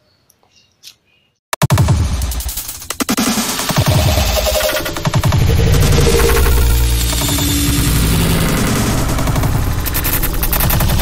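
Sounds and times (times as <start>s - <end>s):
low electronic drone: 2.4s - 11.0s.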